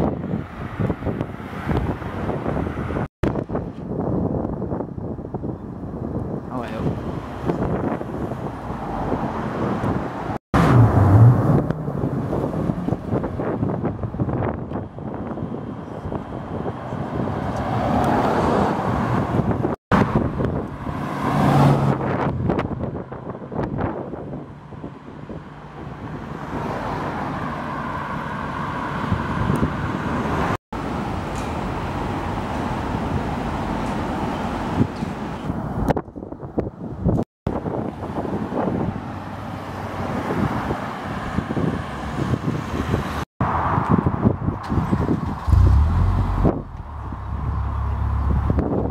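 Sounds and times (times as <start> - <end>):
traffic noise: 0.0 - 48.9
cars driving past: 7.0 - 14.6, 15.2 - 35.8, 37.6 - 48.9
car engines accelerating: 8.4 - 14.6, 44.6 - 48.9.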